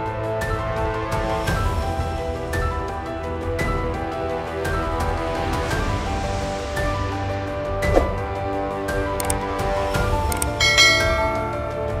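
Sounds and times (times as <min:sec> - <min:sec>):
background music: 0:00.0 - 0:12.0
bright bell chime: 0:10.6 - 0:12.0.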